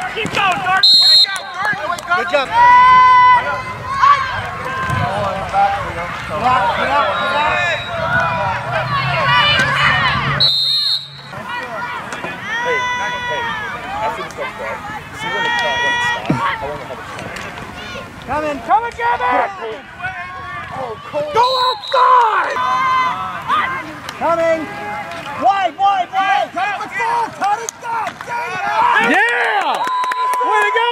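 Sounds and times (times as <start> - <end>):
people shouting and calling out: 0.0 - 30.9.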